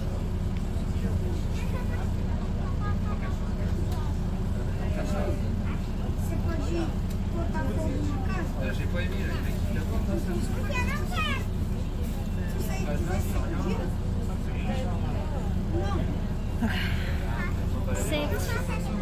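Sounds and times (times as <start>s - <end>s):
bus engine and road rumble: 0.0s - 19.0s
faint voices: 0.0s - 19.0s.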